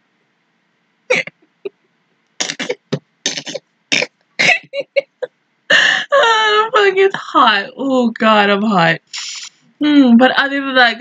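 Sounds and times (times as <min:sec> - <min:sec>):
woman laughing: 0:01.1 - 0:01.3, 0:04.4 - 0:06.8.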